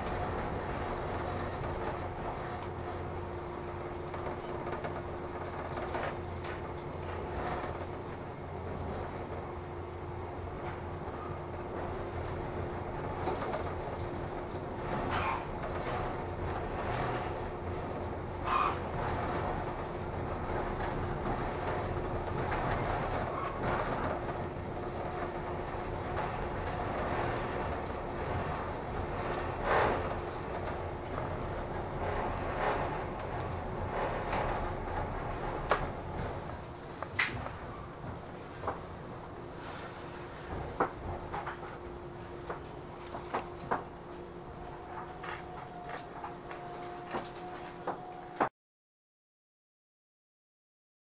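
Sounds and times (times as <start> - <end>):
train cabin rumble and hum: 0.0 - 48.5.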